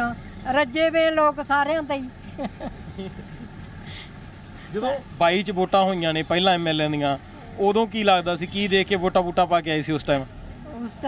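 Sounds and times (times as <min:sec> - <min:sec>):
bus engine and road rumble: 0:00.0 - 0:11.0.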